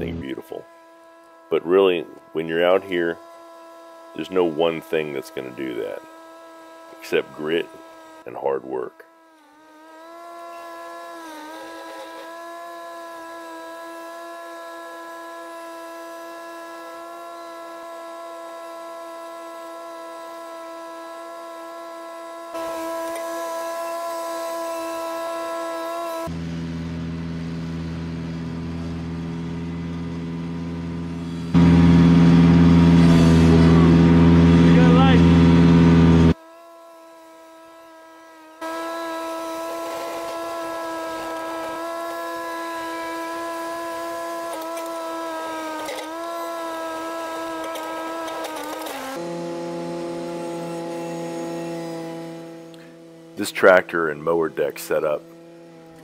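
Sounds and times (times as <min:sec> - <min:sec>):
tractor mower high whine: 0:00.0 - 0:36.8, 0:37.4 - 0:56.0
deep loud engine sound: 0:26.3 - 0:36.4, 0:49.2 - 0:55.3.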